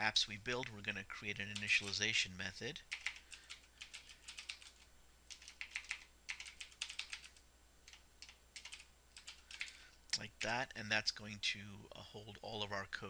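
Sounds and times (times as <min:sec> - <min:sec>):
computer keyboard typing: 0:01.4 - 0:02.1, 0:02.9 - 0:09.8.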